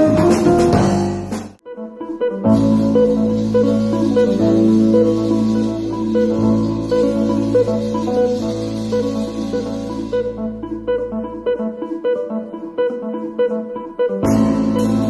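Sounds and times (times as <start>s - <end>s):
bass guitar: 0.0s - 1.6s, 2.2s - 12.4s, 13.0s - 15.0s
drum kit: 0.0s - 1.6s, 2.4s - 11.2s, 14.2s - 15.0s.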